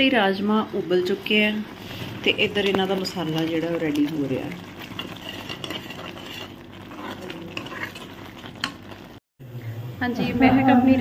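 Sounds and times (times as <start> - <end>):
masala sizzling in a frying pan: 0.0 - 9.2
steel ladle stirring: 1.0 - 9.2.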